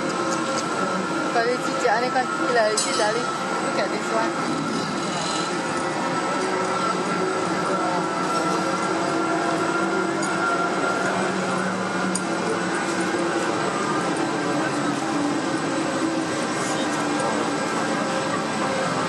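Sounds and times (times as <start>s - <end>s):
electric locomotive whine: 0.0s - 19.0s.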